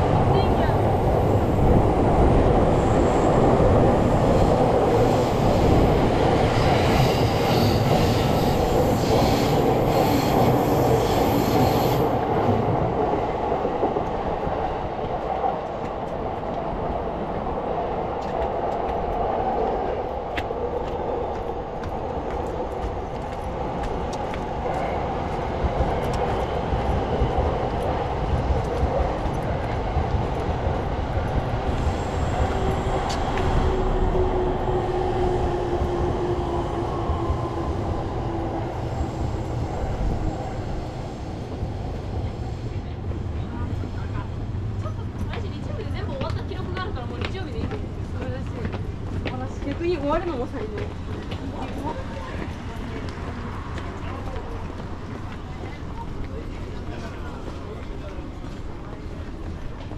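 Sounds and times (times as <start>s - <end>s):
train rumbling on tracks: 0.0s - 59.9s.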